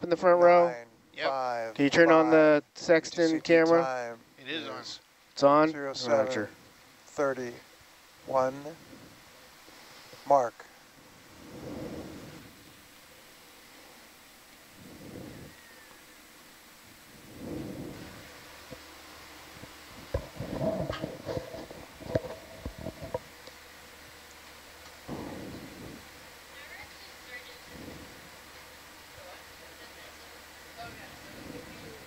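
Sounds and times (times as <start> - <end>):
muffled voices: 29.0 - 32.0.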